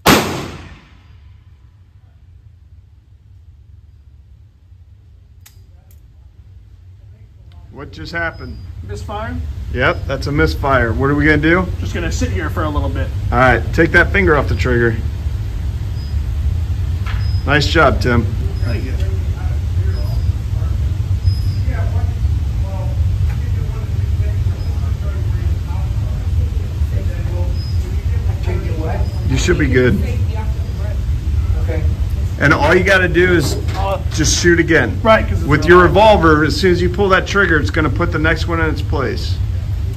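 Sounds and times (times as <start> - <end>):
air handling rumble: 0.0 - 39.9
steady low hum: 0.0 - 39.9.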